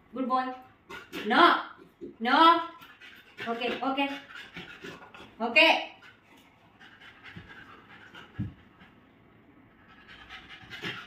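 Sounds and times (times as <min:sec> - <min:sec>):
puppy panting: 0:00.9 - 0:11.0.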